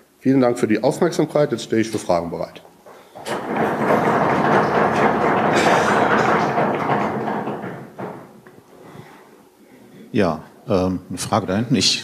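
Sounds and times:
audience applauding: 3.9 - 7.5.

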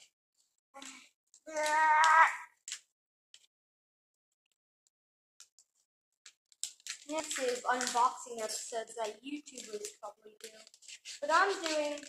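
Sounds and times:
plastic wrap crinkling: 6.4 - 12.0.

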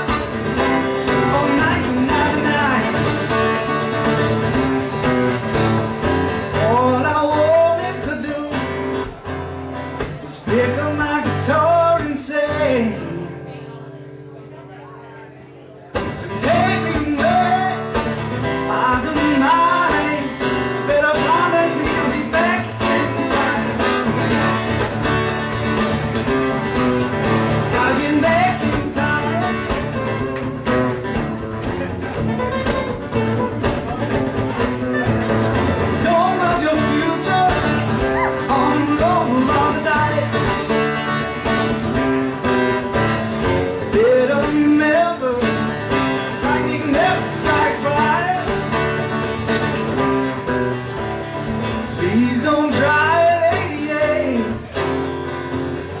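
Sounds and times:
guitar accompaniment: 0.0 - 56.0
sliding guitar melody: 0.0 - 56.0.

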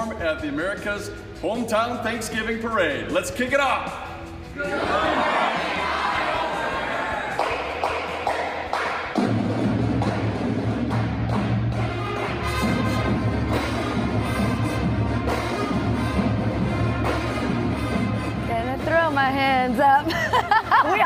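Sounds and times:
percussion hits: 0.0 - 21.0
marching band playing: 4.6 - 20.0.

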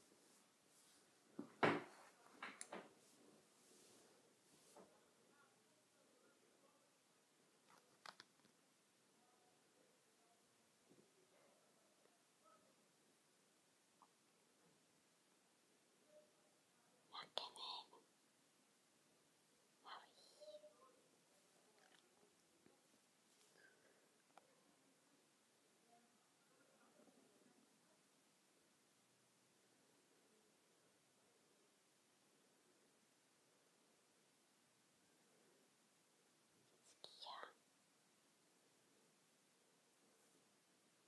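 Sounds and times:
person whispering: 17.0 - 18.1, 19.8 - 21.0, 36.6 - 37.6.

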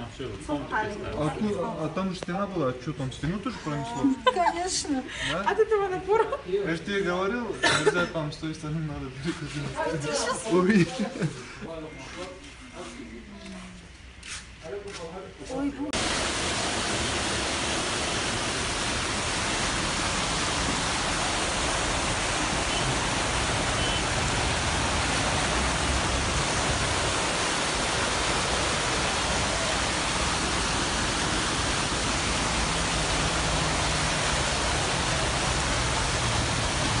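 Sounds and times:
floodwater rushing: 16.0 - 37.0.

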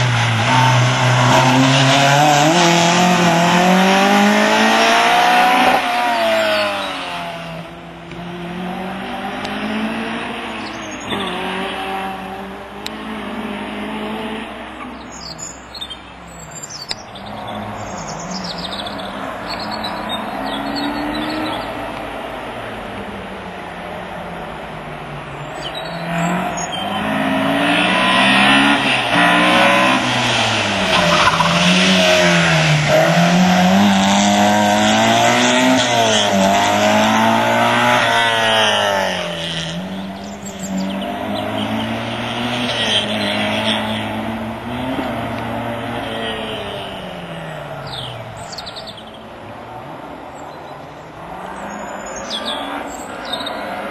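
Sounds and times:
car engine revving hard: 0.0 - 7.4, 25.8 - 48.0.

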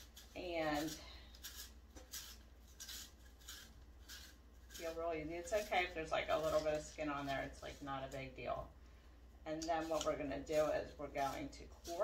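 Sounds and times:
peeler scraping apple skin: 0.0 - 8.4, 9.5 - 12.0.

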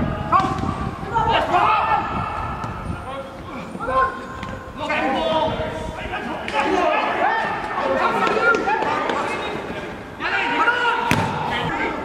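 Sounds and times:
footballers shouting: 0.0 - 12.0
football being kicked: 11.1 - 11.5.

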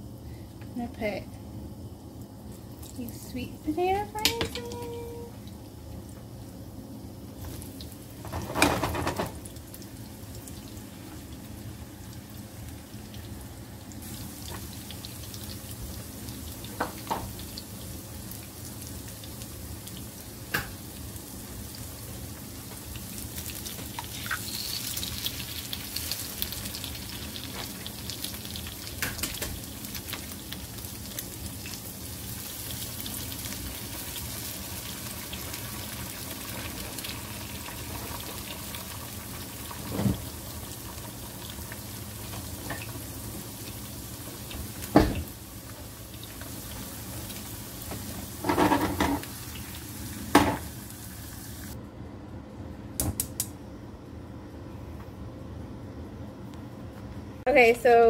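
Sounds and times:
fries sizzling in oil: 0.0 - 51.8
eggs and bacon sizzling: 0.8 - 51.8.

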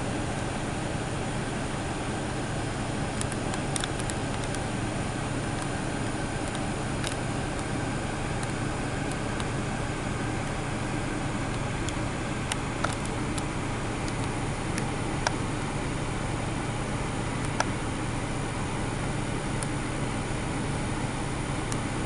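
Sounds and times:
low hum and hiss: 0.0 - 22.0.

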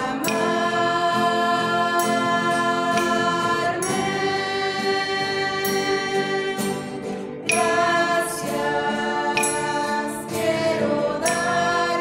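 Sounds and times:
acoustic guitar: 0.0 - 12.0
group singing worship song: 0.0 - 12.0.

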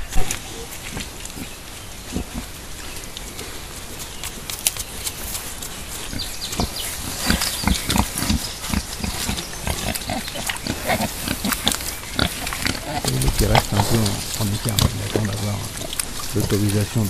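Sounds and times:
wild boars grunting: 5.5 - 17.0.

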